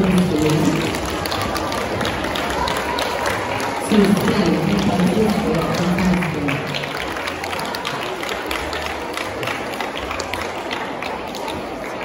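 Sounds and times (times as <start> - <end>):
audience clapping: 0.0 - 12.0.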